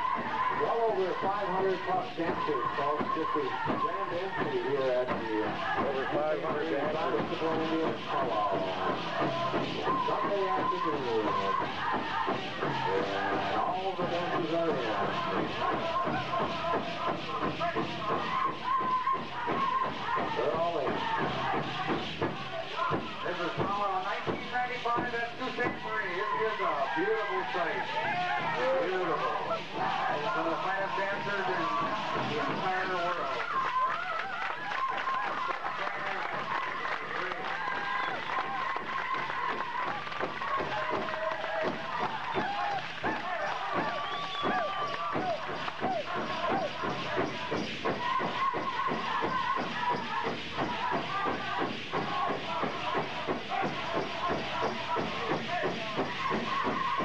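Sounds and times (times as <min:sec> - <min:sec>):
big drum beating: 0:00.0 - 0:33.3, 0:38.6 - 0:57.0
crowd voices: 0:00.0 - 0:57.0
group singing high sliding voices: 0:00.0 - 0:57.0.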